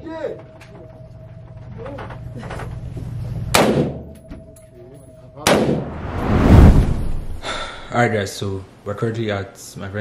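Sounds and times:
gunshots echoing indoors: 3.5s - 4.2s, 5.4s - 5.9s.

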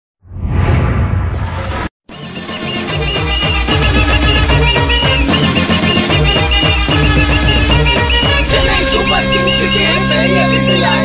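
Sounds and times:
whooshing sound effect: 0.2s - 1.9s.

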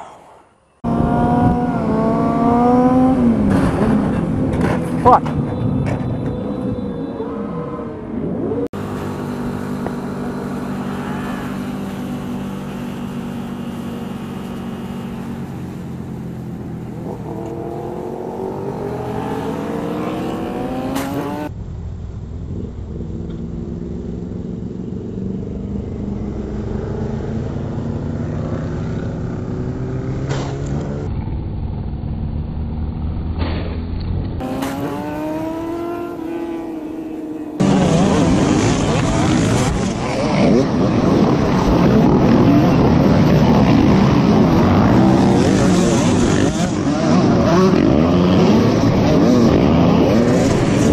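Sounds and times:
motorcycle engine accelerating: 0.8s - 5.2s, 7.8s - 50.9s.

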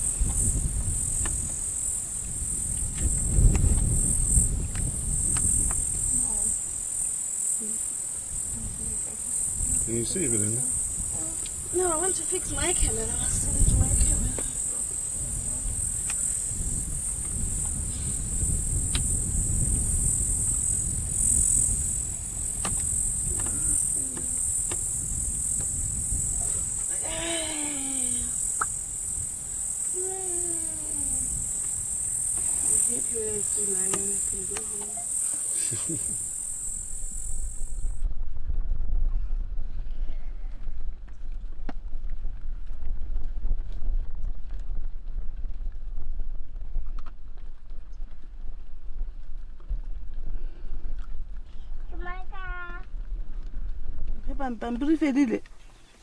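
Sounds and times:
high-pitched insect buzz: 0.0s - 38.0s
wind rumbling on microphone: 0.0s - 56.0s.

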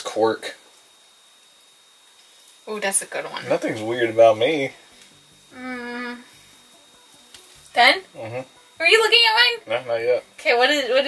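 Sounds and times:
person humming a steady note: 5.4s - 7.4s, 8.1s - 8.9s.

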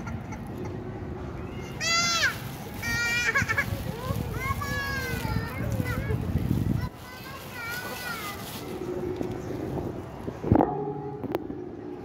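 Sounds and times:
faint low drone: 8.7s - 12.0s.

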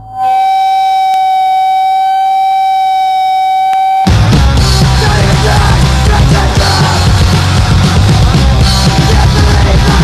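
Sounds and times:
electric guitar feedback tone: 0.0s - 4.8s
punk band playing: 4.0s - 10.0s.

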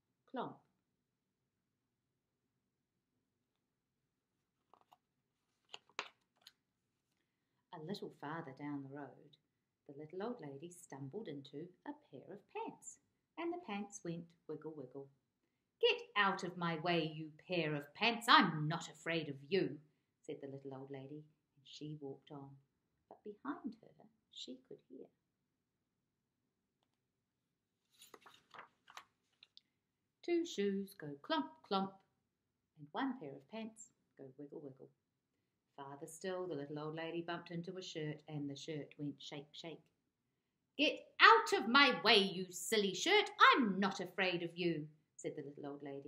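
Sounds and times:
book pages turning: 4.5s - 6.6s, 27.8s - 29.6s.

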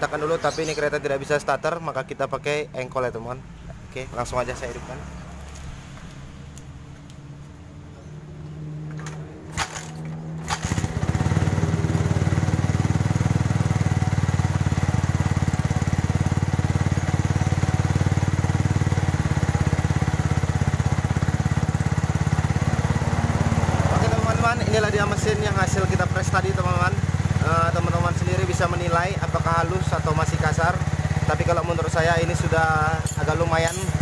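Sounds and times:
motorcycle engine running: 8.3s - 34.0s.

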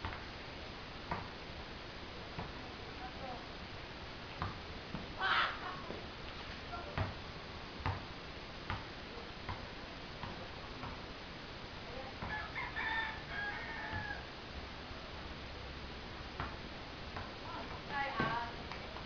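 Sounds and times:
basketball bouncing on concrete: 1.1s - 1.3s, 4.4s - 5.1s, 6.9s - 7.2s, 7.8s - 8.1s, 8.7s - 8.9s, 9.5s - 11.1s, 12.2s - 12.4s, 13.9s - 14.1s, 16.4s - 19.0s
rooster crowing: 12.2s - 14.3s.

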